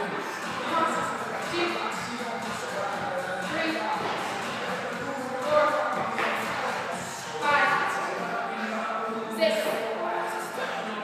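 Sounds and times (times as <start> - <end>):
indistinct voices echoing: 0.0 - 11.0.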